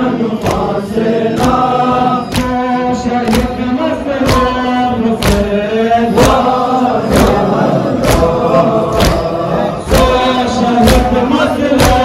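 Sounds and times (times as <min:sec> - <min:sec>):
men chanting in unison: 0:00.0 - 0:12.0
hands beating on chests: 0:03.2 - 0:05.6, 0:08.0 - 0:09.3, 0:09.9 - 0:12.0.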